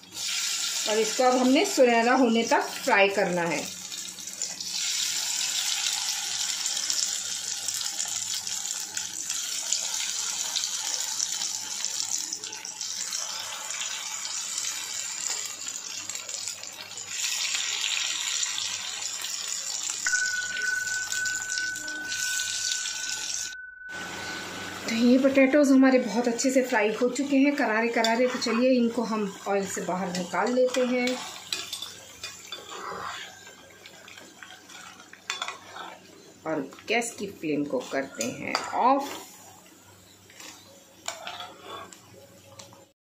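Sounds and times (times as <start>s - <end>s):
potatoes sizzling in hot oil: 0.0s - 23.4s, 26.1s - 41.3s.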